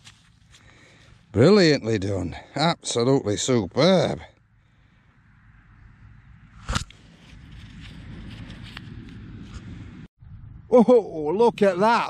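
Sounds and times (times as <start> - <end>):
rustling and scraping over grass: 0.0 - 1.3, 6.6 - 9.8.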